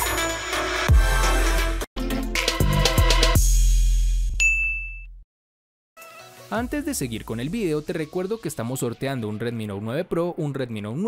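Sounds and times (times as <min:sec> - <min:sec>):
bright ding: 0:04.4 - 0:05.1.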